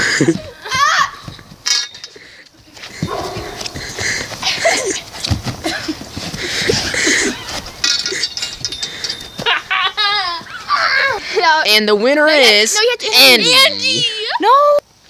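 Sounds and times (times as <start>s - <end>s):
children yelling and shrieking: 0.4s - 1.5s, 10.2s - 11.4s
knocks and rustles from scuffle: 2.8s - 9.6s.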